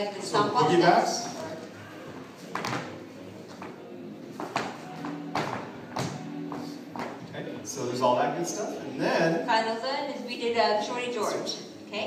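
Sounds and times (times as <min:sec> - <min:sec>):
faint music: 0:00.0 - 0:12.0.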